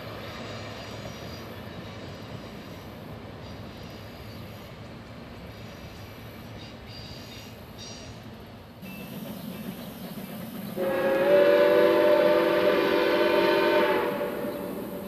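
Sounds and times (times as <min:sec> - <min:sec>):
locomotive whistle blast: 0:10.8 - 0:15.0.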